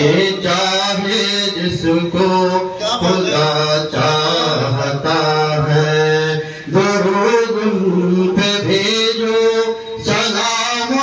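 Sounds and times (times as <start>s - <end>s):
man chanting unaccompanied: 0.0s - 11.0s.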